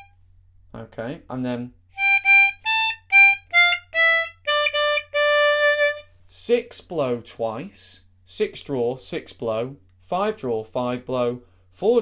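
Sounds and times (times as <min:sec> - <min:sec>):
harmonica single notes: 0:00.0 - 0:00.2, 0:01.9 - 0:06.1.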